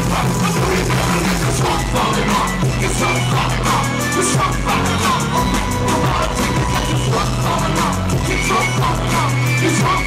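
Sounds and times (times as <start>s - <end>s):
bass line: 0.0s - 10.0s
drum kit: 0.0s - 10.0s
keyboards: 0.0s - 10.0s.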